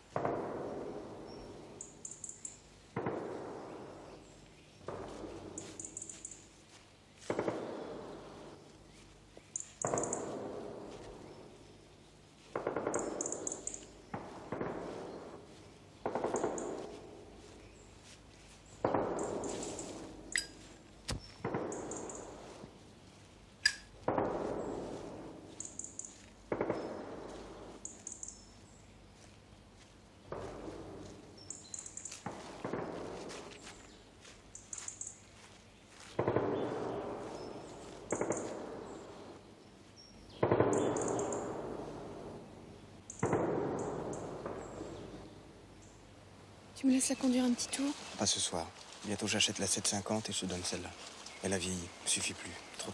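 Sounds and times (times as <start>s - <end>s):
sharp echoing bangs: 0.0s - 1.8s, 2.9s - 4.2s, 4.8s - 5.6s, 7.2s - 8.6s, 9.8s - 11.3s, 12.5s - 17.2s, 18.8s - 22.4s, 23.6s - 25.5s, 26.5s - 27.8s, 32.2s - 33.6s, 36.1s - 39.4s, 40.4s - 45.4s.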